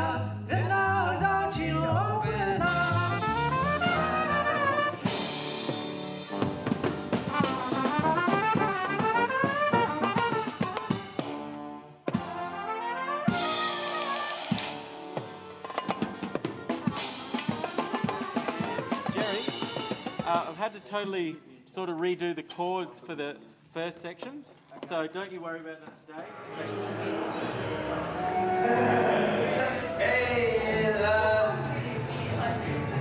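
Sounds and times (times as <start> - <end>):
double bass: 0.0 - 10.4
drum kit: 2.5 - 22.2
orchestra playing fast melody: 2.7 - 21.0, 26.3 - 31.6.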